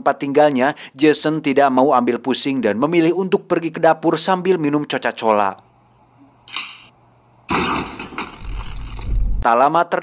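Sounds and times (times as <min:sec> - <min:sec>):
box of toys crashing to floor: 0:07.5 - 0:09.0
deep rumble: 0:08.4 - 0:09.5.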